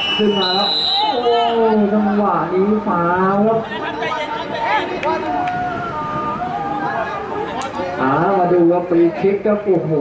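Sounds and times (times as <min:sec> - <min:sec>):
background chatter: 0:00.2 - 0:10.0.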